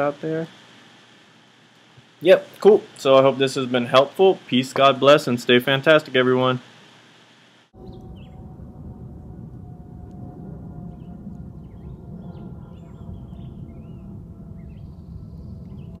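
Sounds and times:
low rumble on microphone: 0:07.8 - 0:16.0
small birds chirping: 0:10.9 - 0:16.0.

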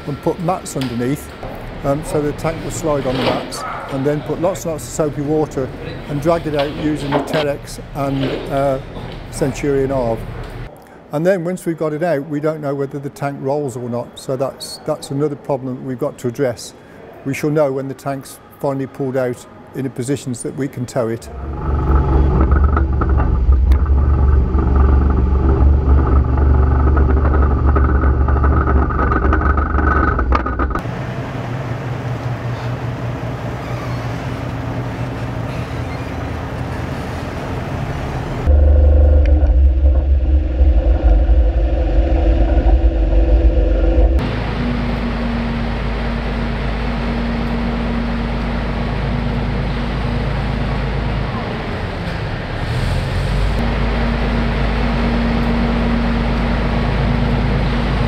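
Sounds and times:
steady machine noise: 0:21.3 - 0:32.4, 0:37.5 - 0:52.6, 0:53.5 - 0:58.0
loud deep vehicle engine: 0:21.3 - 0:33.4, 0:36.4 - 0:58.0.

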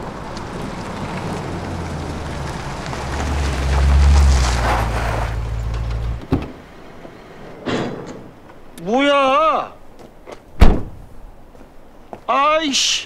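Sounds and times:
car driving past slowly: 0:00.0 - 0:07.1.

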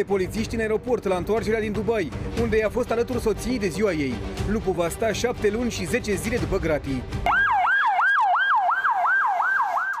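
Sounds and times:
police siren yelp: 0:07.3 - 0:10.0.

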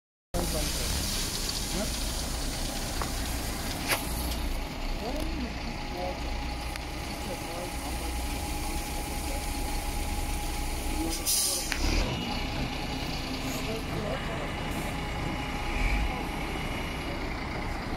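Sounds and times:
diesel engine running: 0:00.4 - 0:17.9.

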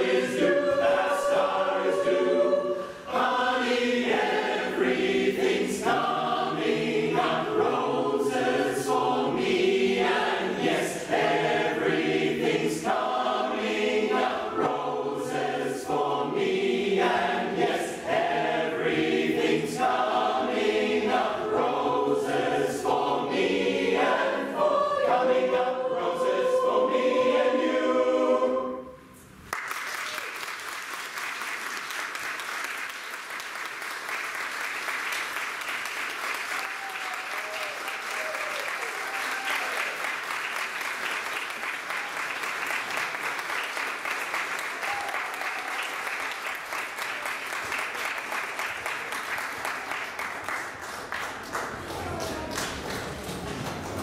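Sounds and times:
choir singing in harmony: 0:00.0 - 0:29.2
audience applause: 0:29.5 - 0:54.0.

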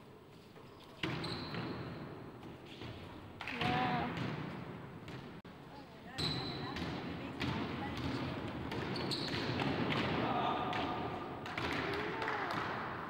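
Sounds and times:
basketball bouncing on wooden floor: 0:06.2 - 0:10.2.

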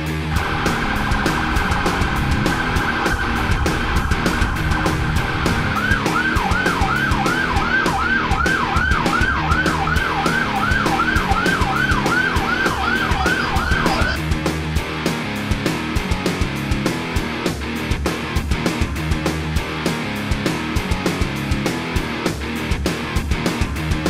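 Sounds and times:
electronic siren warbling and yelping: 0:00.4 - 0:14.2.

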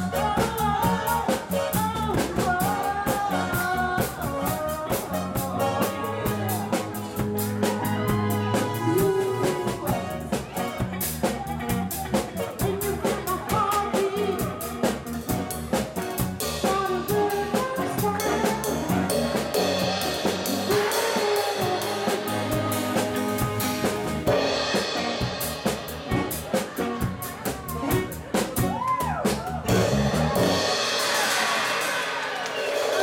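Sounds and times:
drum kit beat: 0:00.0 - 0:33.0
guitar: 0:00.0 - 0:33.0.

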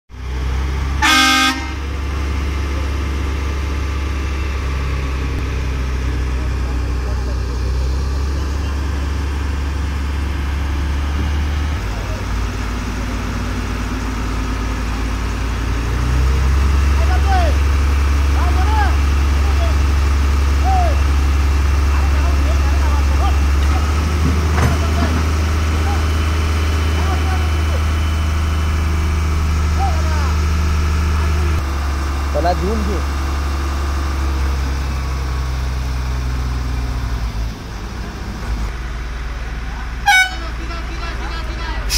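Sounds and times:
diesel engines humming: 0:00.1 - 0:41.9
vehicle horn toot: 0:01.0 - 0:01.9, 0:40.0 - 0:40.6.

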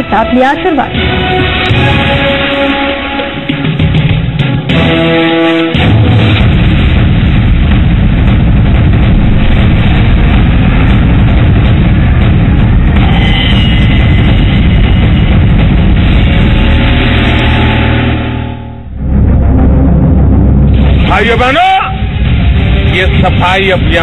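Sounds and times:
music: 0:00.0 - 0:24.0
dense rumbling whoosh: 0:06.2 - 0:24.0.

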